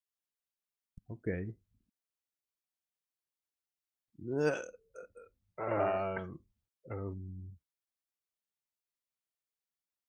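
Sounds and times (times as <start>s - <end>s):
short voiced sound from person: 5.6s - 7.5s.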